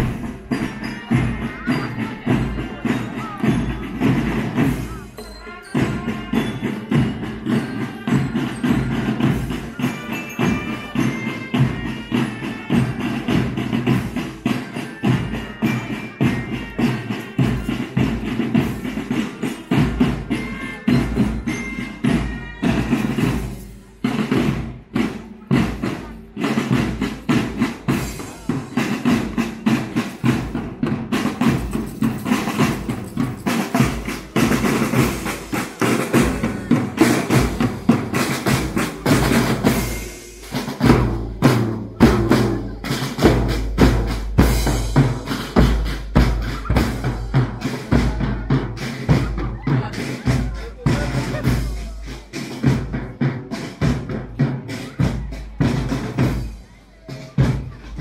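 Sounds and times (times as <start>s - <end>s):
bass drum: 0.0s - 5.0s, 30.2s - 56.4s
snare drums: 0.0s - 58.0s.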